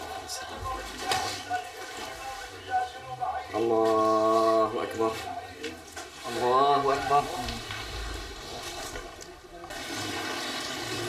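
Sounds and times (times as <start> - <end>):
faint indistinct voices: 0.0 - 10.6
room noise: 0.0 - 11.0.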